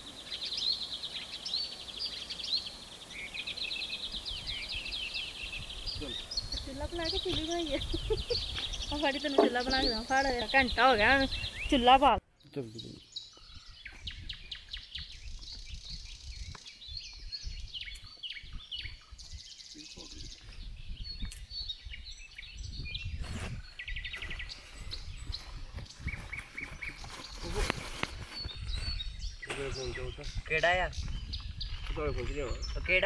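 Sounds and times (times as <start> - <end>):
birds singing and chirping: 0.0 - 33.0.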